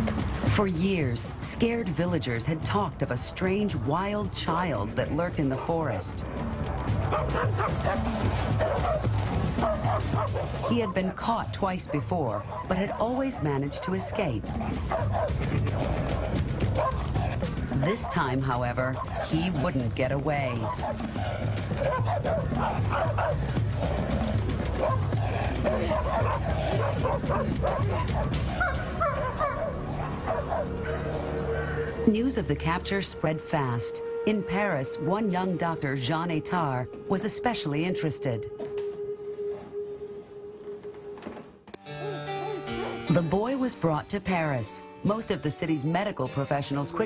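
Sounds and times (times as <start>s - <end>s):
background music drone: 0.0s - 47.0s
dogs barking and yelping: 5.2s - 32.0s, 42.0s - 43.1s, 46.8s - 47.0s
yelping and whimpering cries: 20.6s - 31.9s, 42.0s - 43.1s.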